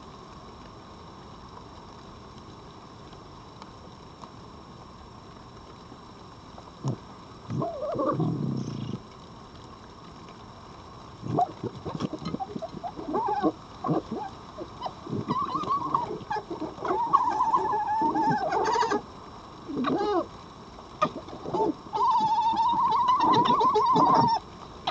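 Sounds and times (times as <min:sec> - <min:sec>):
fox whining: 0:06.8 - 0:09.0, 0:11.2 - 0:19.0, 0:19.7 - 0:20.3, 0:21.0 - 0:24.9
foxes gekkering: 0:06.8 - 0:09.0, 0:11.2 - 0:19.0, 0:19.7 - 0:20.3, 0:21.0 - 0:24.9.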